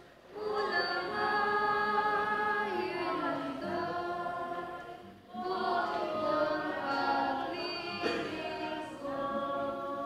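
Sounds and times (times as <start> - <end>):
women singing a hymn: 0.2 - 10.0.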